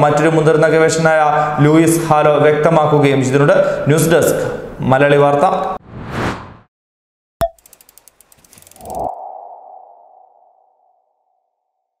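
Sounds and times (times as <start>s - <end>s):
soft ticks: 7.6s - 8.8s.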